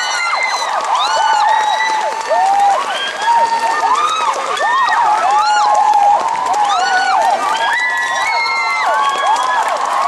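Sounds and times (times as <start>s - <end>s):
audience applauding: 0.0s - 10.0s
high-pitched screams and cheers: 0.0s - 10.0s.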